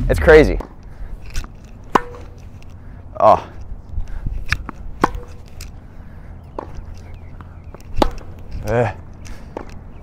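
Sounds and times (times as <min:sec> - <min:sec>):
tennis ball pops: 0:01.9 - 0:02.3, 0:04.5 - 0:05.4, 0:07.4 - 0:08.5.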